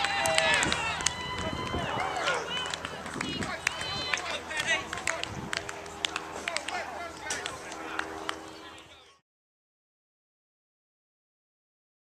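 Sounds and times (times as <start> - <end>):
players shouting: 0.0 - 9.2.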